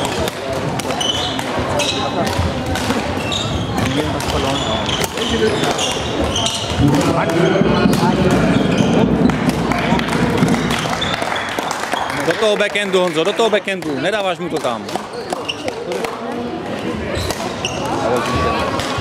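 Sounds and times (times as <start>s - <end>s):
racket hitting shuttlecock: 0.0s - 3.1s
chatter in echoing hall: 0.0s - 19.0s
shoe squeaks on wooden floor: 0.9s - 2.2s, 3.1s - 9.3s, 15.0s - 15.9s, 17.1s - 18.2s.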